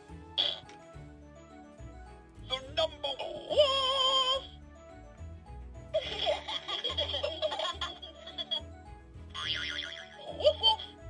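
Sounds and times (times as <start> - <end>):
background music with bass: 3.6 - 11.0
recorded giggling: 6.0 - 8.6, 9.4 - 11.0.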